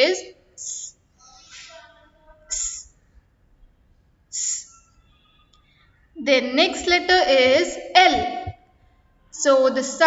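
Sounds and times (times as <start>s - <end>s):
woman making hissed s sounds: 0.6s - 1.9s, 2.5s - 3.0s, 4.3s - 4.8s.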